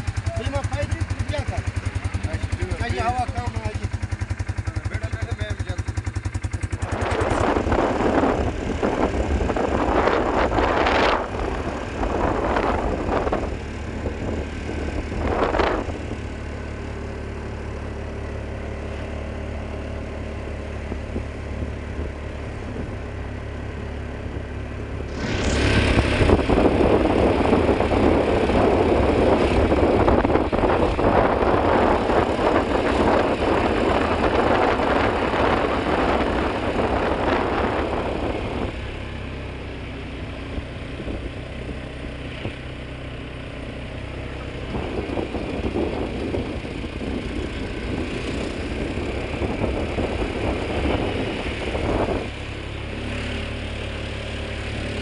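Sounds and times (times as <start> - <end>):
motorcycle engine humming: 0.0 - 55.0
wind rushing noise: 6.0 - 16.5, 24.2 - 39.4, 44.6 - 53.2.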